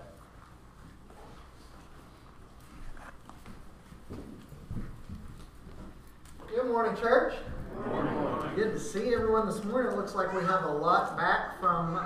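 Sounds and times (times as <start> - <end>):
footsteps on floor: 0.0 - 6.5.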